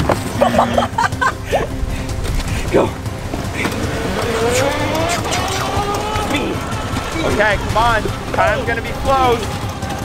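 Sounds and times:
electric motor whining: 0:02.1 - 0:10.0.

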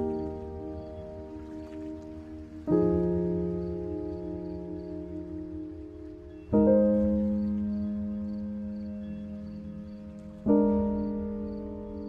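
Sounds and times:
soft instrumental music chord: 0:00.0 - 0:12.0.

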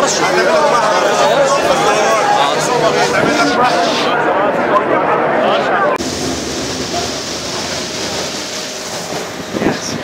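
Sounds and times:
train noise at platform: 0:00.0 - 0:10.0.

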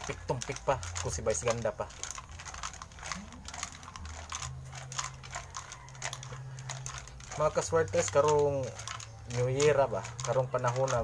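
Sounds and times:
plastic tube rattling when shaken: 0:00.0 - 0:11.0.

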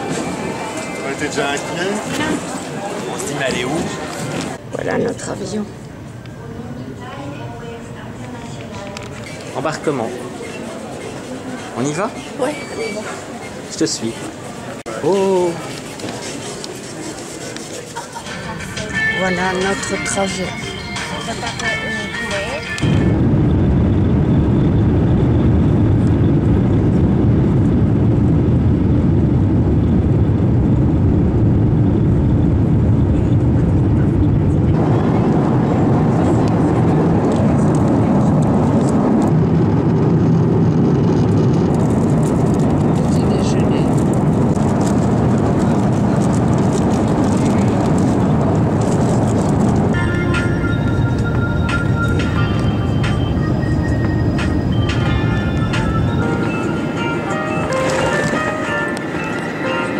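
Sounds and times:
jet engines roaring in cabin: 0:18.2 - 0:59.9.

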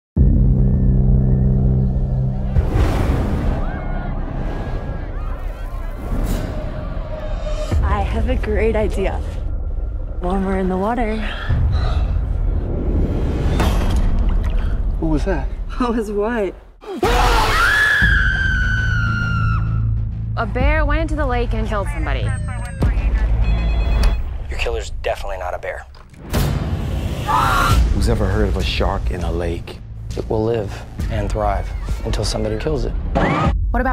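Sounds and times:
low droning rumble: 0:00.2 - 0:13.4.

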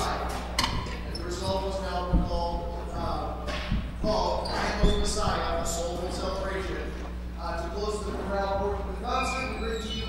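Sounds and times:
man speaking in a hall: 0:00.0 - 0:10.0
steady low hum: 0:00.0 - 0:10.0.

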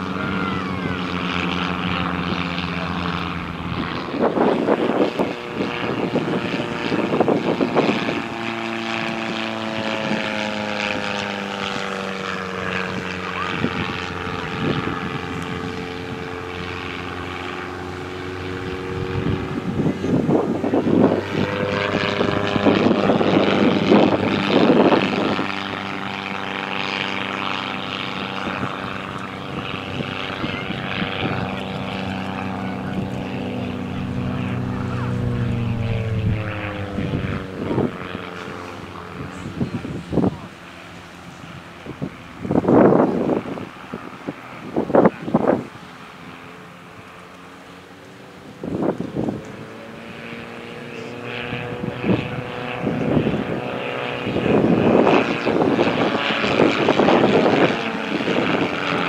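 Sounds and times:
propeller plane engine droning: 0:00.0 - 0:59.0
rushing air: 0:33.6 - 0:38.0.

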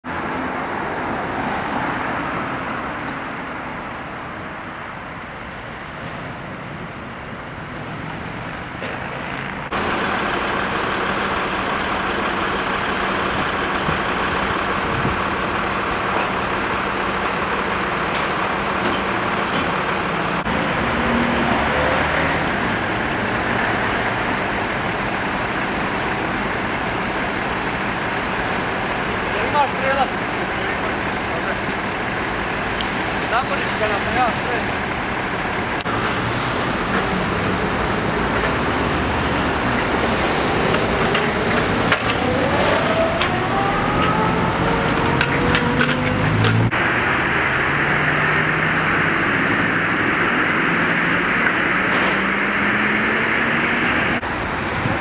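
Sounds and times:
street traffic: 0:00.0 - 0:55.0
vehicle engine running: 0:09.6 - 0:35.9.

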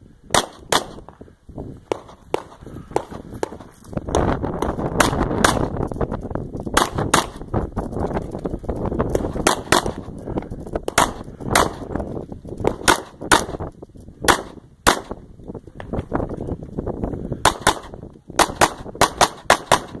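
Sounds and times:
pistol shots: 0:00.3 - 0:01.0, 0:04.6 - 0:05.7, 0:06.8 - 0:07.4, 0:09.1 - 0:10.1, 0:10.9 - 0:11.9, 0:12.7 - 0:13.6, 0:14.3 - 0:15.2, 0:17.4 - 0:20.0.

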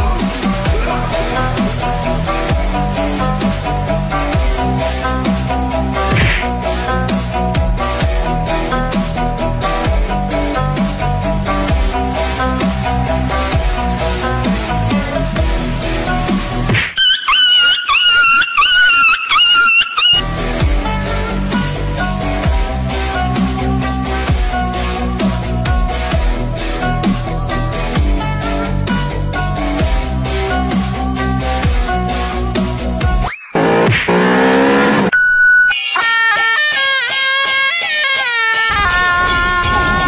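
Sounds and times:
background music with a beat: 0:00.0 - 0:18.2, 0:19.4 - 0:40.0
electronic beep: 0:33.3 - 0:36.0
engine-like drone: 0:33.6 - 0:35.1.

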